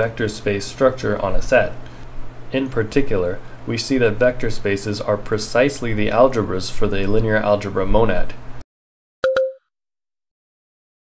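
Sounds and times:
plop sound effect: 9.2s - 9.6s.

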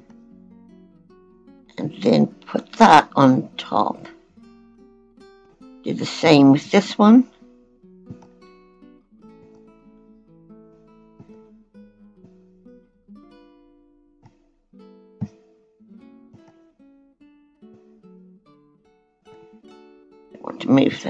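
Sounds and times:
plucked acoustic guitar: 0.0s - 21.0s.

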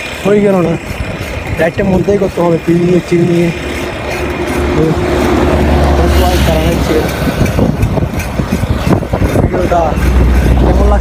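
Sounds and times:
low wind buffeting: 0.0s - 11.0s
vehicle engine passing: 2.2s - 11.0s
low rumble: 3.0s - 11.0s.

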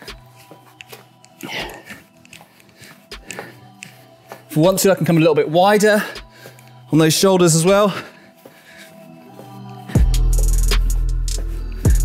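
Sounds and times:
man breathing hard: 0.0s - 4.5s, 5.9s - 6.9s, 7.8s - 12.0s
light foot scuffs: 0.0s - 5.2s.

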